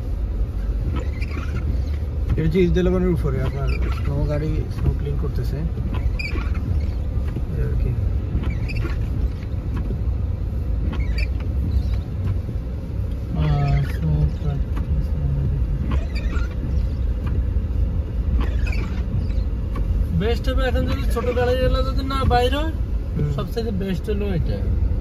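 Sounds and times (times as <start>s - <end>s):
car driving low rumble: 0.0s - 25.0s.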